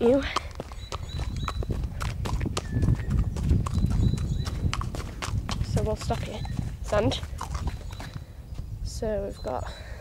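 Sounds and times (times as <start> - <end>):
horse hooves clopping on dirt: 0.0 - 9.7.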